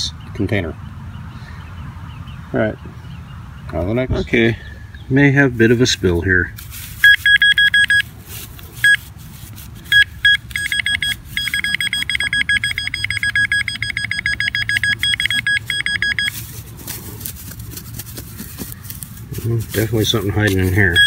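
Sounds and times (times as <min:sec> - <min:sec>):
metal detector probe beeping: 0:07.0 - 0:08.1, 0:08.7 - 0:09.1, 0:09.8 - 0:16.6, 0:20.1 - 0:21.0.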